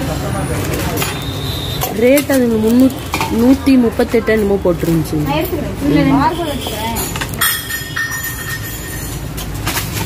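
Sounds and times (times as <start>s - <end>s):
brass vessels knocking and ringing: 6.6s - 9.6s.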